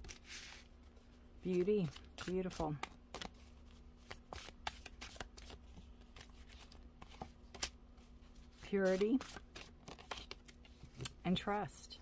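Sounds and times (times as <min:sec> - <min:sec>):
cards being shuffled: 0:00.0 - 0:00.7, 0:01.5 - 0:11.2.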